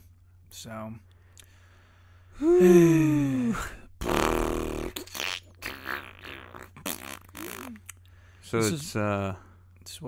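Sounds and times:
man sighing heavily: 2.3s - 3.9s.

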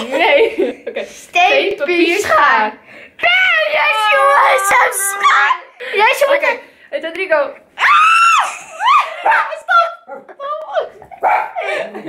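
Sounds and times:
boy squealing: 3.5s - 5.7s, 7.8s - 9.3s
woman shrieking with laughter: 7.8s - 9.5s.

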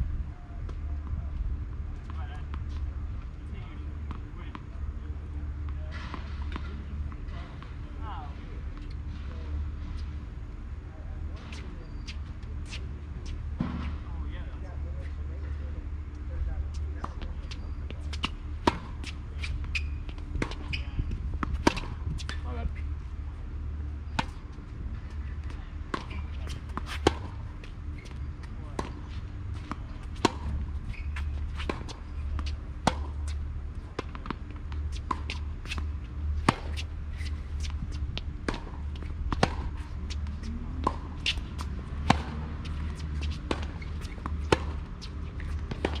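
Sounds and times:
tennis ball bouncing: 17.0s - 22.5s, 24.1s - 46.0s
racket hitting tennis ball: 21.4s - 22.4s, 25.4s - 27.7s, 28.7s - 46.0s.

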